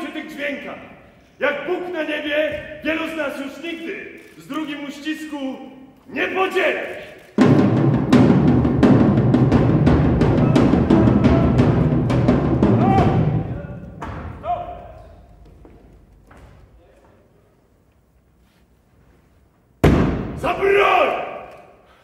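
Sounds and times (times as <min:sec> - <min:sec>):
loud battle drumming: 0:07.4 - 0:15.3.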